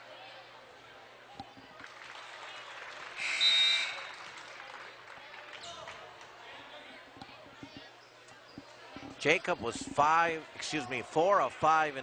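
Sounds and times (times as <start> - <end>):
gym crowd noise: 0.0 - 12.0
referee's whistle blast: 3.2 - 4.1.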